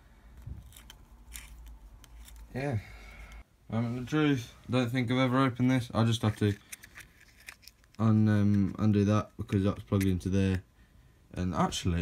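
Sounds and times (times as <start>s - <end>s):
small plastic parts clicking: 6.2s - 8.8s.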